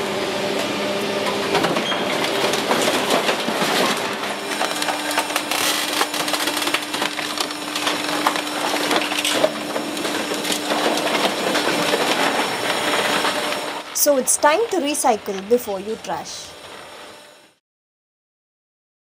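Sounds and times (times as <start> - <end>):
steady machine hum: 0.0 - 17.6.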